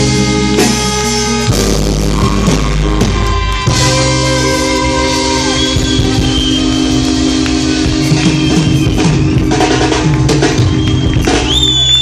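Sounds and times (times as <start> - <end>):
live reggae band playing: 0.0 - 12.0.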